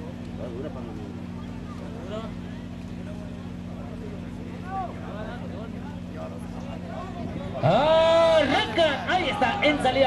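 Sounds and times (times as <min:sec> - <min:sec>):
faint voices talking: 0:00.0 - 0:10.0.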